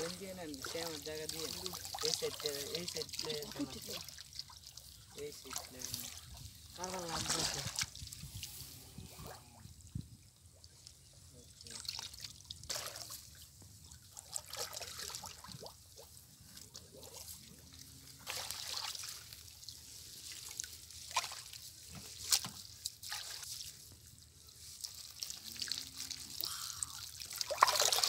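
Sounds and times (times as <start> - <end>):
water sloshing and dripping: 0.0 - 28.0.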